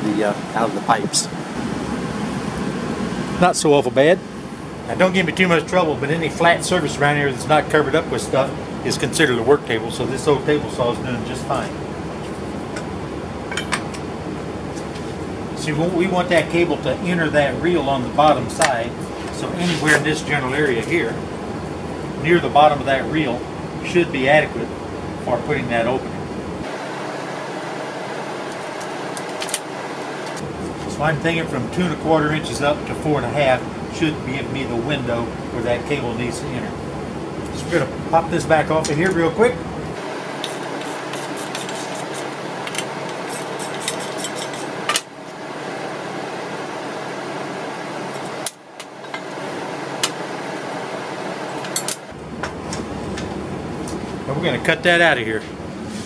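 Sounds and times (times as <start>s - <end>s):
steady background hiss: 0.0s - 52.2s
blower fan rushing: 0.0s - 56.0s
metal tools clinking and rattling: 41.6s - 45.1s, 51.6s - 52.1s
metal parts clicking: 42.6s - 45.1s, 51.6s - 52.1s.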